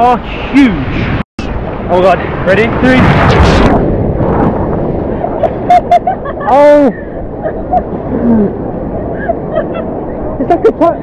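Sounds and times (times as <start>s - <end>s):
wave crashing: 0.4s - 11.0s.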